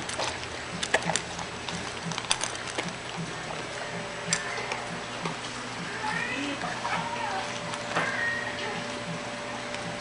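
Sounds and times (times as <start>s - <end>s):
puppy chewing food: 0.0s - 10.0s.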